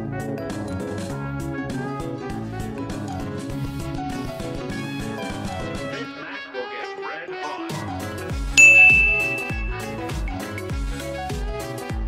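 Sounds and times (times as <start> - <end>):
background music with steady beat: 8.6 - 10.0
loud high bell ding: 8.6 - 10.0.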